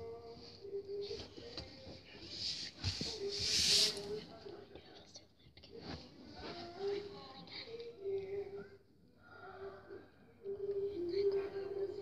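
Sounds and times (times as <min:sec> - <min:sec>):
girl whispering: 0:09.6 - 0:12.0.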